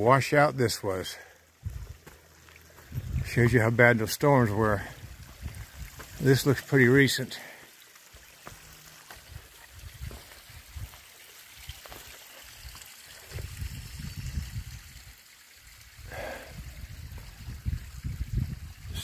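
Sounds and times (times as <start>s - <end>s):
creek trickling over rocks: 0.0s - 19.0s.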